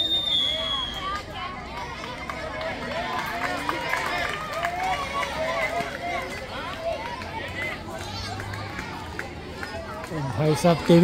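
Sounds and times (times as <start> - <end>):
many voices shouting: 0.5 - 11.0.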